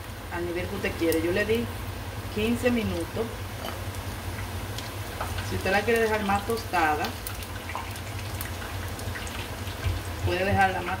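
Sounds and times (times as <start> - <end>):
meat deep-frying in hot oil: 0.0 - 11.0
oil crackling and popping: 3.0 - 10.8.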